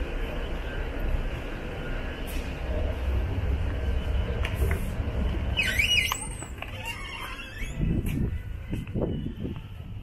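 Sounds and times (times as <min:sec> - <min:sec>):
low rumble: 0:00.0 - 0:06.9
door hinge squeal: 0:05.4 - 0:08.0.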